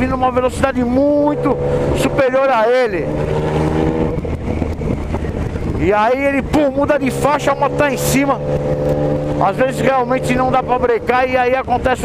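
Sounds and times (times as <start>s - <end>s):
man's voice: 0.0s - 3.2s, 5.8s - 8.5s, 9.4s - 12.0s
motorcycle engine running: 0.0s - 12.0s
wind noise on microphone: 0.0s - 12.0s.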